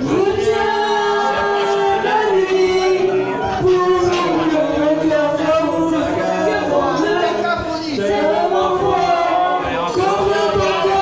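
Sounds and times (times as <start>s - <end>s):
group singing a long note: 0.0s - 11.0s.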